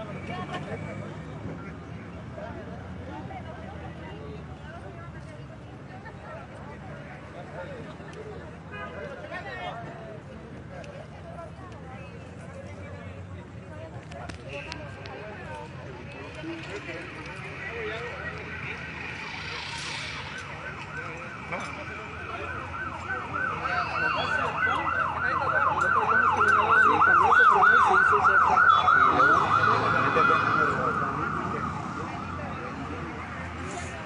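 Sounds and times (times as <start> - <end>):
siren yelping: 18.4 - 33.4.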